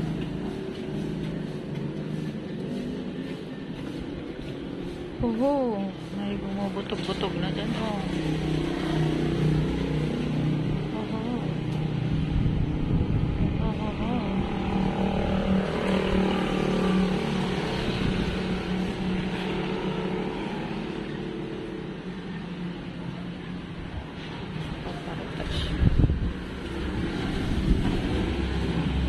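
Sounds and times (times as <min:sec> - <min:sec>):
motor engine humming: 0:00.0 - 0:19.0
background voices: 0:05.1 - 0:08.4, 0:10.7 - 0:11.9, 0:13.4 - 0:14.8.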